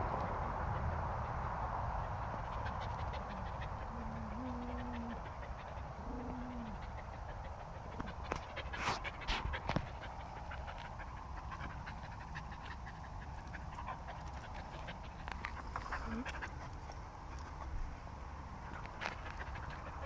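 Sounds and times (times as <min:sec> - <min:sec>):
small dog panting: 0:00.7 - 0:17.9, 0:18.7 - 0:20.0.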